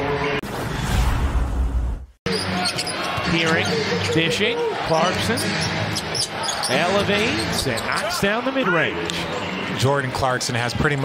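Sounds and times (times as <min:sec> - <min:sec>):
low rumbling whoosh: 0:00.4 - 0:02.2.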